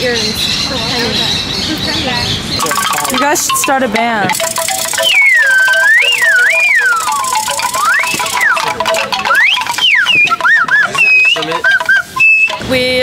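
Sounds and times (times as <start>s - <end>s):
slide whistle swooping: 4.8s - 12.8s.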